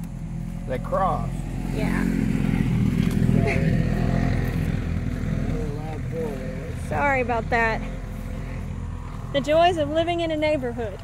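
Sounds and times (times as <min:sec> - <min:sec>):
rough engine vehicle passing: 0:00.0 - 0:11.0.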